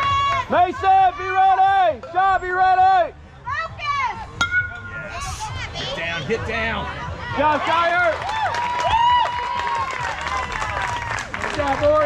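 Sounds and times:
metal bat hitting ball: 4.4s - 5.1s.

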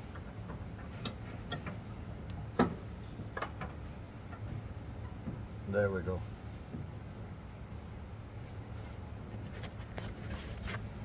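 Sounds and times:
metal clicks and knocks: 0.0s - 5.5s
steady low hum: 0.0s - 11.0s.

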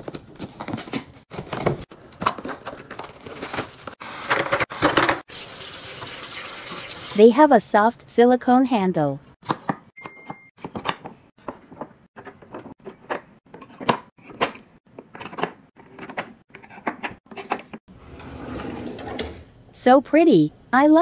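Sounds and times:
drawer sliding: 15.2s - 19.5s.

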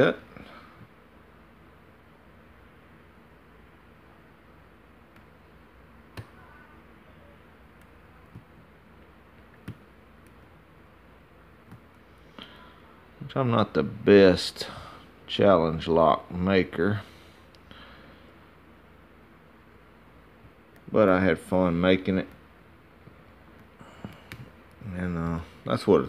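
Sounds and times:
low steady hiss: 0.0s - 26.0s.

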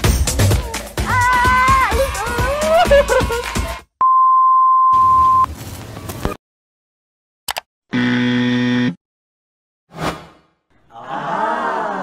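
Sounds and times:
flat buzzer tone: 7.9s - 9.0s.

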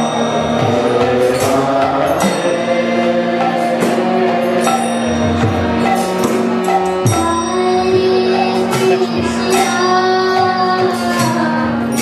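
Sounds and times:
high voice singing chant: 0.0s - 6.0s, 7.1s - 12.0s
sharp percussion strikes: 0.0s - 12.0s
steady held drone: 0.0s - 12.0s.

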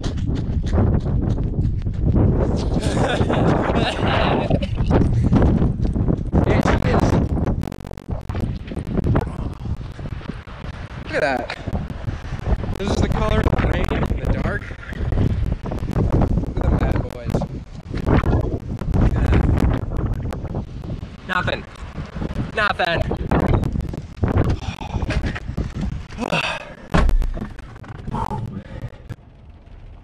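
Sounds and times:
wind buffeting microphone: 0.0s - 29.2s
man's voice: 6.4s - 7.3s, 12.8s - 14.8s, 16.5s - 17.4s.

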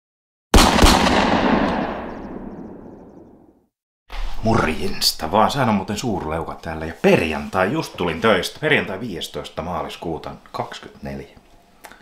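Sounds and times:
explosion bangs: 0.6s - 2.9s
rumbling echo: 0.6s - 3.4s.

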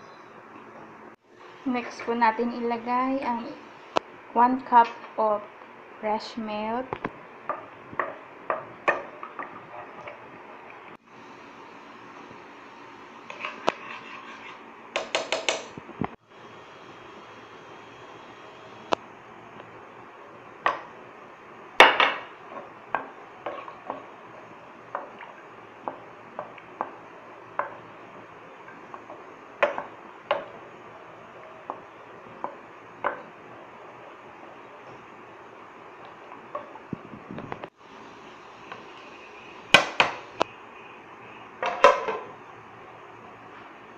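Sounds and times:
spoon and spatula knocking on pan: 7.5s - 9.5s, 15.0s - 15.8s, 27.6s - 27.8s, 28.7s - 30.5s.

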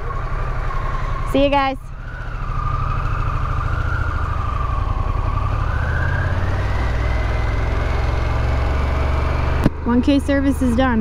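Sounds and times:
motorcycle engine rumbling: 0.0s - 11.0s.

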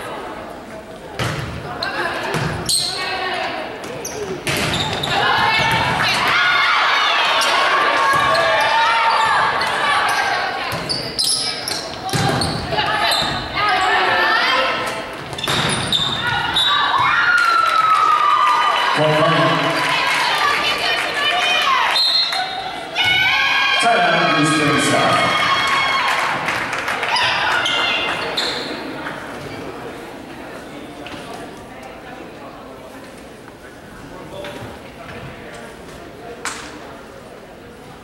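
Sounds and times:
people shouting and calling: 4.9s - 10.8s, 16.0s - 28.1s.

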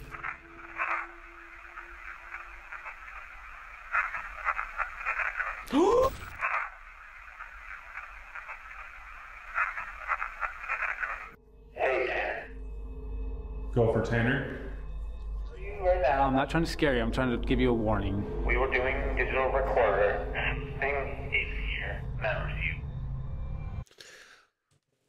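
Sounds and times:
crackly whispery bursts: 0.0s - 5.7s, 6.4s - 11.4s
static hiss: 0.0s - 11.4s.

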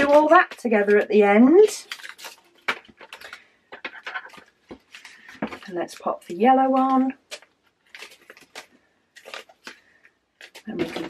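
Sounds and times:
packaging rustling: 0.0s - 11.0s.

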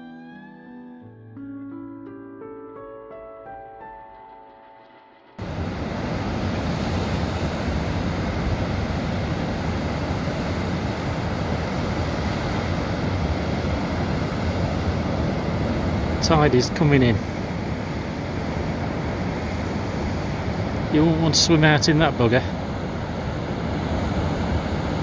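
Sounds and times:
plucked-string music: 0.0s - 5.2s
wind buffeting microphone: 5.4s - 21.0s
heavy surf breaking on beach: 5.4s - 25.0s.

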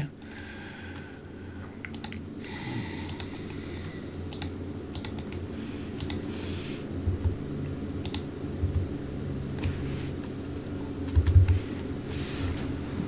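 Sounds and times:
computer mouse and keyboard clicks: 0.2s - 1.1s, 1.8s - 2.2s, 3.1s - 5.4s, 6.0s - 6.3s, 8.0s - 8.8s, 9.6s - 11.6s.

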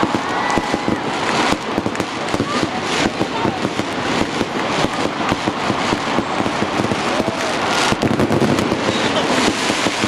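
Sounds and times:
fireworks bangs and crackles: 0.0s - 10.0s.

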